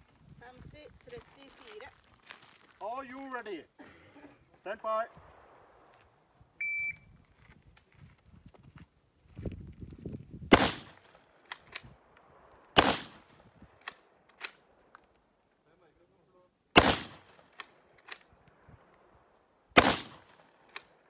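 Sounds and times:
shot timer beep: 6.6s - 7.1s
rifle shots with ringing tail: 10.5s - 11.1s, 12.8s - 13.3s, 16.8s - 17.4s, 19.8s - 20.4s.

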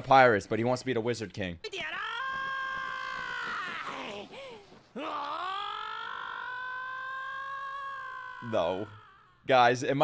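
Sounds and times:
young male high-pitched scream: 1.7s - 4.3s, 5.0s - 9.4s.

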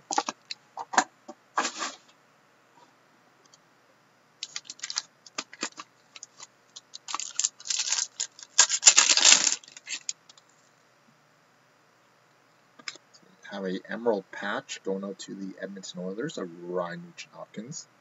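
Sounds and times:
cards in plastic sleeves shuffled: 4.4s - 10.2s.

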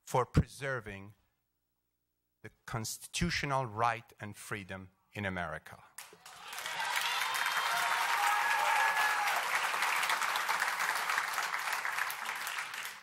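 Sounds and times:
audience applauding: 6.0s - 13.0s.

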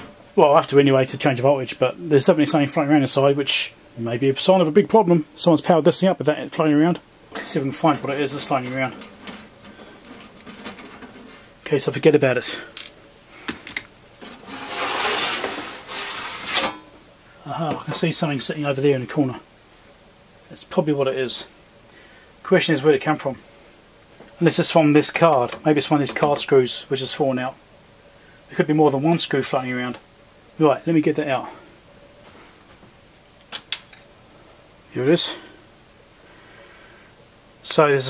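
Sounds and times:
metal cover scraping along chassis: 7.4s - 11.6s, 14.2s - 16.9s.

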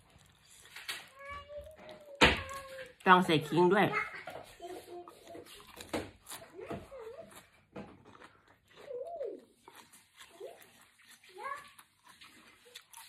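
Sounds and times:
faint clicks of eating: 4.2s - 13.0s.

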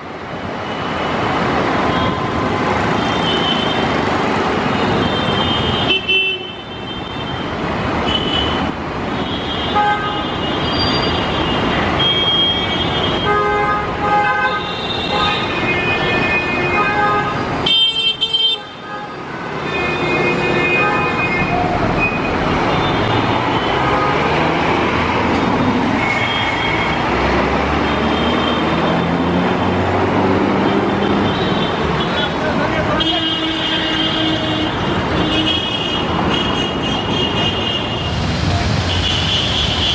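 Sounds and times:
city road traffic: 0.0s - 39.9s.

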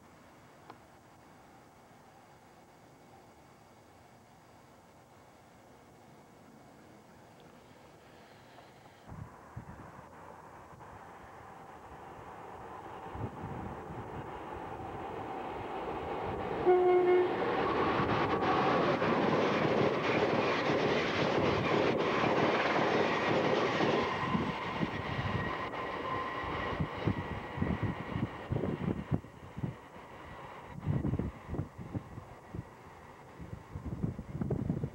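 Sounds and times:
train wheels rushing on rail: 7.9s - 34.9s
train horn blast: 16.6s - 17.8s.

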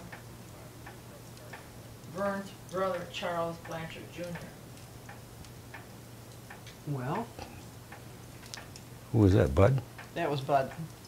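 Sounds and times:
low steady hum: 0.0s - 11.0s
steady ticking: 0.0s - 11.0s.

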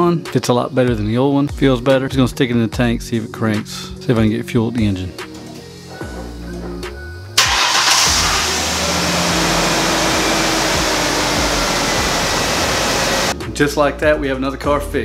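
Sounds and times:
car engine starting and running: 7.4s - 13.4s.

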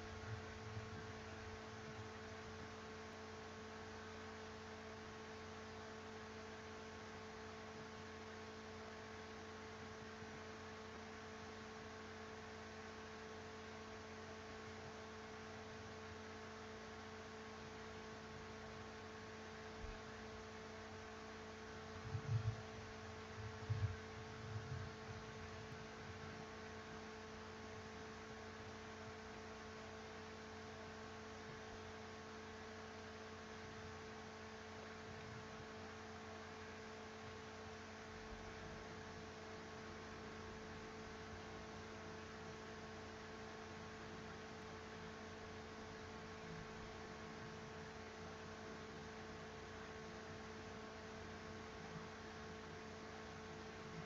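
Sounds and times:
electrical hum: 0.0s - 54.0s
soft low thumps: 22.0s - 22.8s, 23.4s - 25.9s.

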